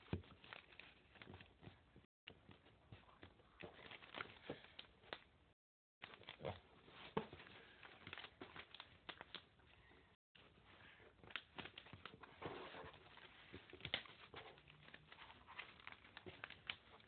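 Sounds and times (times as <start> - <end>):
paper rustling and crinkling: 0.0 - 5.3, 10.4 - 17.0.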